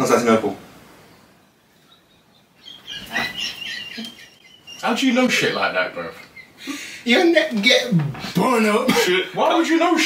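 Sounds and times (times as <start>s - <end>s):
man laughing in squeaky squeals: 2.6s - 4.9s.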